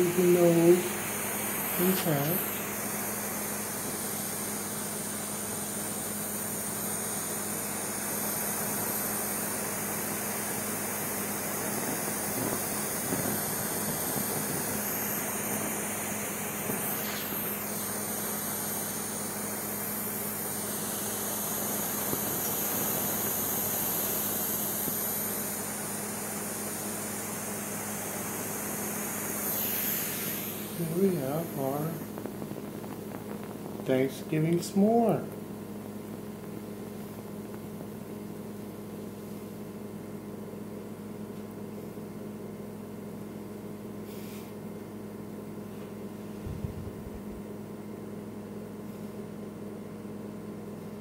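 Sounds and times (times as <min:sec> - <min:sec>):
gas torch hissing: 0:00.0 - 0:39.8, 0:44.0 - 0:44.7.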